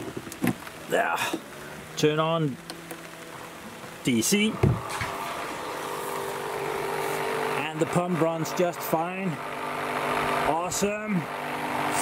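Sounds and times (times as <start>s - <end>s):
pump motor humming: 0.0s - 12.0s.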